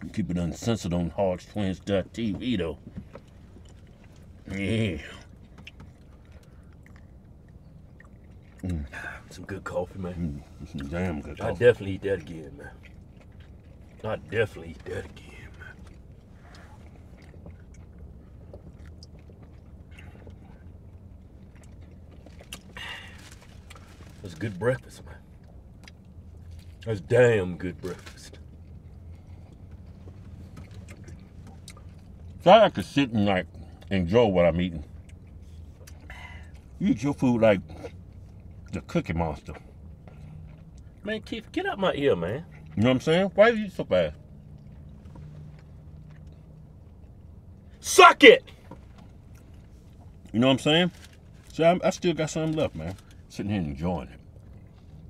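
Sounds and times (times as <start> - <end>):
low steady hum: 0.0 - 55.0
people sipping coffee: 2.6 - 24.2
mouth sounds: 8.6 - 9.3.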